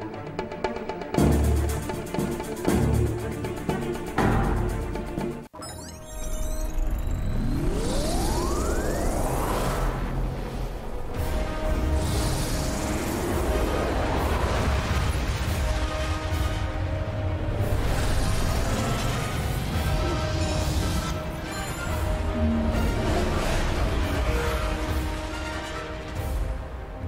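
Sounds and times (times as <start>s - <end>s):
dramatic orchestral score: 0.0s - 5.5s, 7.8s - 27.0s
rising pitch sweep: 5.6s - 11.0s.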